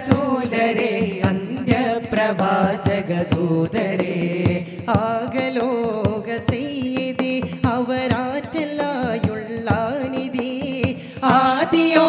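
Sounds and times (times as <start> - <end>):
group singing in unison: 0.0 - 6.1, 10.9 - 12.0
sharp percussive beats: 0.0 - 12.0.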